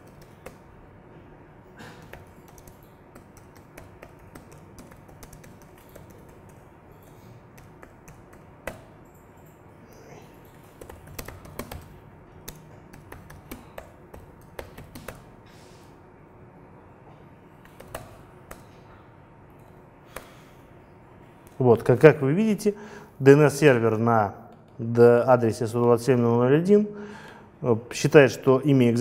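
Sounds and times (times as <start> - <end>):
faint room hum: 0.0 - 29.0.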